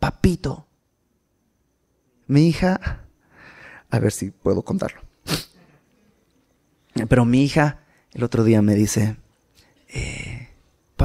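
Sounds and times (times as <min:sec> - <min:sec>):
man's sharp breath: 0:03.2 - 0:03.9.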